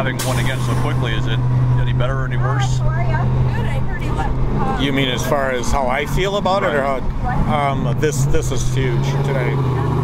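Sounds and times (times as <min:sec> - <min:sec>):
low engine drone: 0:00.0 - 0:10.0.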